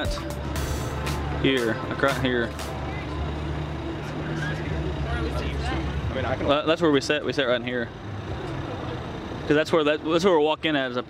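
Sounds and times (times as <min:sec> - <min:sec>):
faint voices: 0:01.3 - 0:10.4.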